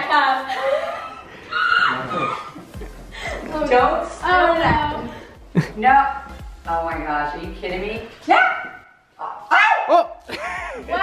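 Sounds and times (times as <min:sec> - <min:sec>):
people talking: 0:03.5 - 0:08.1
dog barking: 0:08.3 - 0:10.1.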